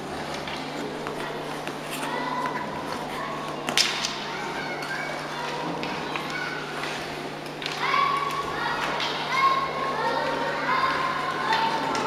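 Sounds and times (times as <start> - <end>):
children shouting: 1.2 - 6.9, 7.6 - 12.0.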